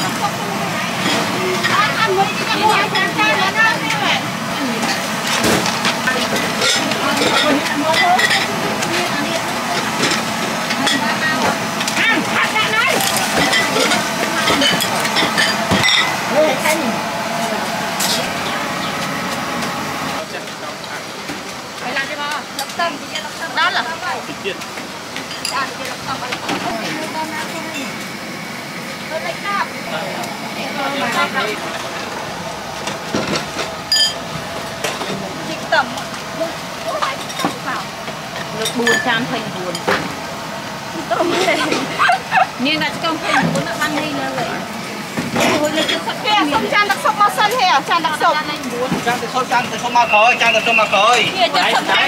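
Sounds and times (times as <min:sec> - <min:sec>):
people talking: 0:00.0 - 0:19.2, 0:20.0 - 0:24.6, 0:25.3 - 0:28.0, 0:28.8 - 0:32.1, 0:34.8 - 0:40.2, 0:40.9 - 0:52.0
food stall background noise: 0:00.0 - 0:52.0.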